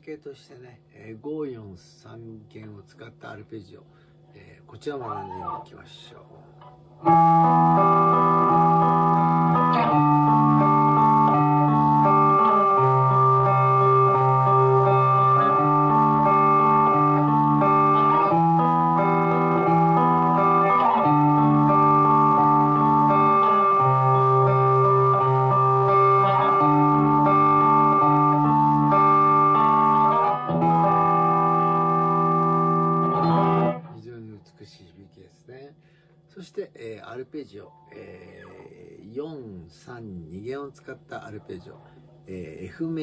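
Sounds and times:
electric guitar arpeggio: 5.1s - 5.7s, 7.0s - 34.0s.

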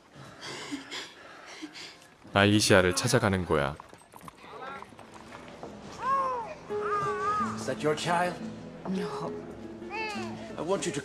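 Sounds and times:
hooves on cobblestones: 3.7s - 6.6s.

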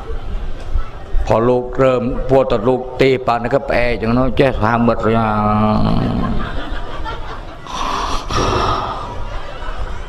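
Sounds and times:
sharp breathy intake of breath: 7.7s - 9.3s.

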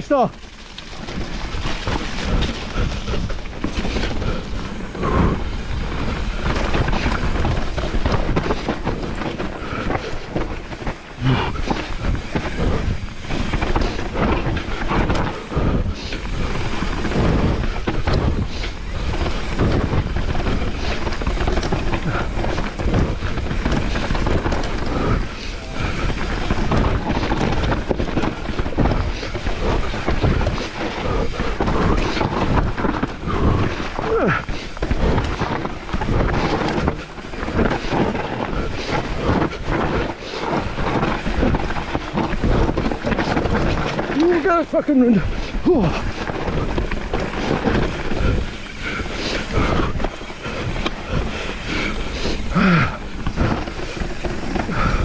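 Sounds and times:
bike knocking and rattling: 0.0s - 55.0s
tyres rumbling on dirt: 0.0s - 55.0s
wind on microphone: 1.0s - 55.0s.

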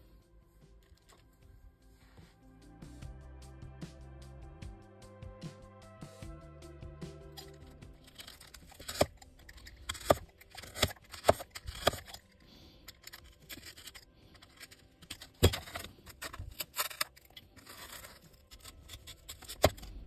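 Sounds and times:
utility knife cutting foam: 7.4s - 20.0s
sharp cracks of foam: 8.2s - 12.2s.

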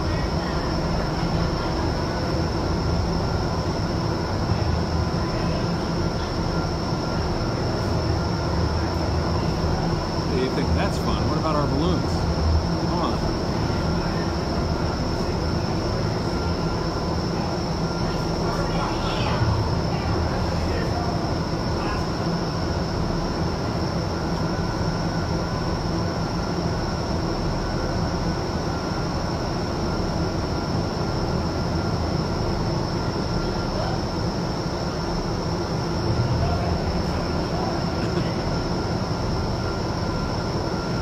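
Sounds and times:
high whine: 0.0s - 41.0s.

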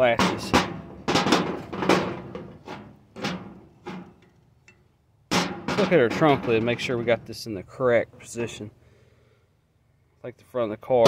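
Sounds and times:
booming thuds: 0.0s - 4.2s, 5.3s - 7.2s.

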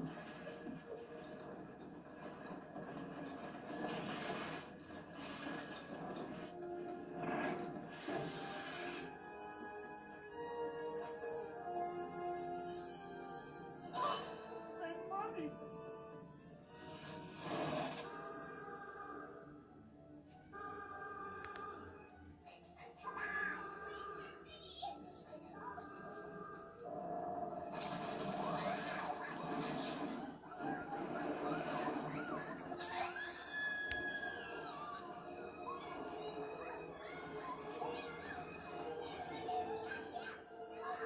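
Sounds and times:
cartoon music through tv speaker: 0.0s - 41.0s
cartoon children screaming: 31.7s - 38.8s.

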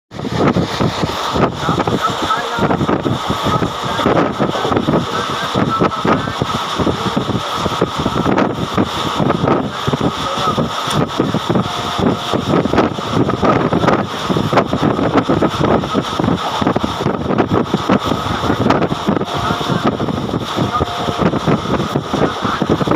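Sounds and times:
train rushing at high speed: 0.1s - 22.9s
wind buffeting microphone: 0.1s - 22.9s.

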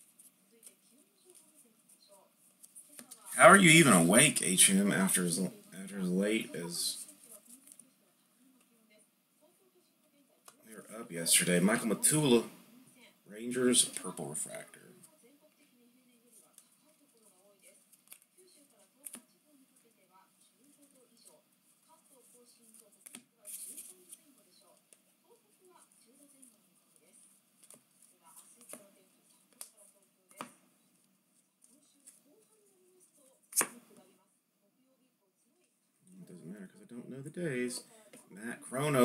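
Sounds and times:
cards sliding and snapping: 17.9s - 18.3s, 33.5s - 33.8s
faint speech: 31.6s - 39.0s.

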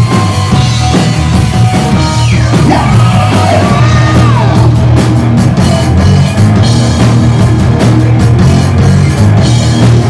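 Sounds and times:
live rock band playing: 0.0s - 10.0s
man singing into microphone: 2.5s - 4.7s.

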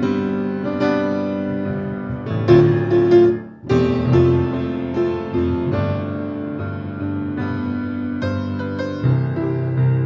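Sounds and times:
slow keyboard chords: 0.0s - 10.0s.

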